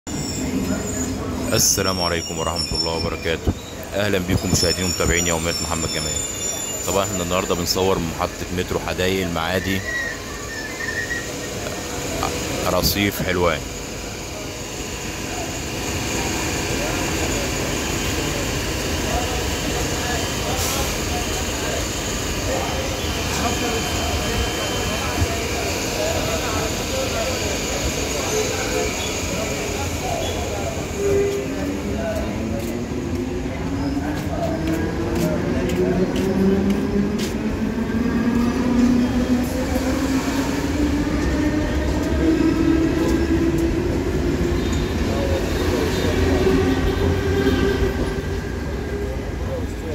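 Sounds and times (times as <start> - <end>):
train wheels squealing: 0.1 - 32.2, 33.5 - 35.0, 38.0 - 48.9
train rumbling: 0.1 - 49.9
voices on platform: 0.1 - 49.9.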